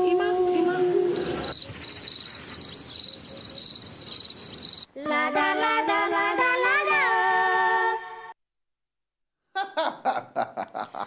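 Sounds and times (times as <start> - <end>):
cricket trill: 1.2 - 4.9
several voices singing: 5.0 - 8.3.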